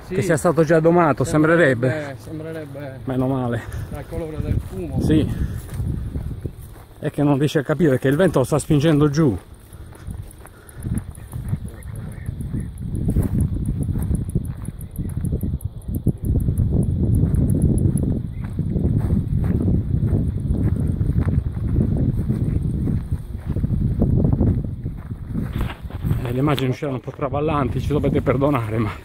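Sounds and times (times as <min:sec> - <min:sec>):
footsteps on dirt track: 0:00.0 - 0:29.0
wind buffeting microphone: 0:00.0 - 0:29.0.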